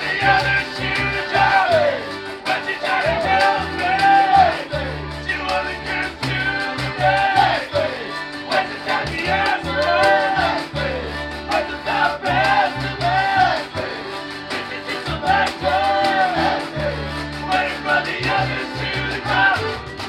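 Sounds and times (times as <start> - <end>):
man singing loudly: 0.0 - 13.9, 14.7 - 19.8
folk-punk band playing: 0.0 - 20.0
washboard scraping rhythm: 0.1 - 19.8.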